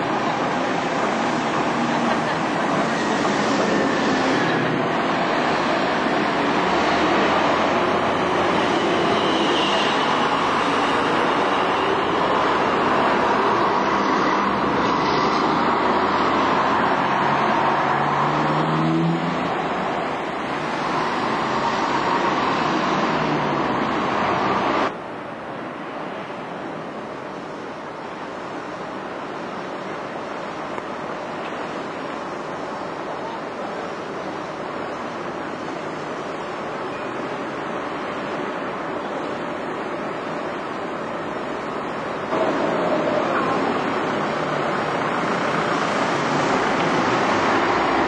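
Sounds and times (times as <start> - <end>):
bus pulling away: 0.0 - 25.2, 26.5 - 48.0
diesel buses passing: 0.0 - 48.0
town street traffic: 0.0 - 48.0.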